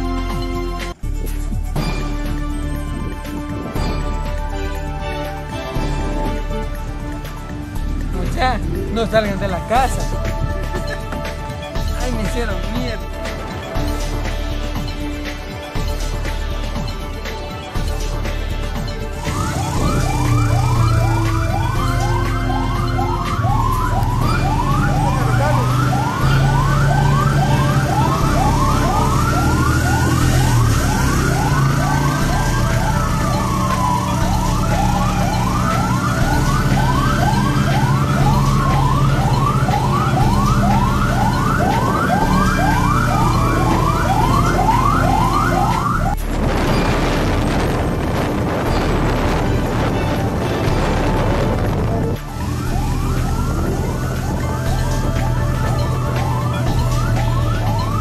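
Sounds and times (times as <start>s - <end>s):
low engine hum: 0.0s - 58.0s
police siren yelp and wail: 2.4s - 58.0s.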